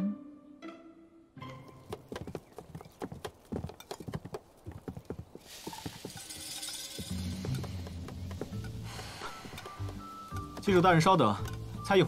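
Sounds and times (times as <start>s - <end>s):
background music: 0.0s - 2.7s, 6.4s - 12.0s.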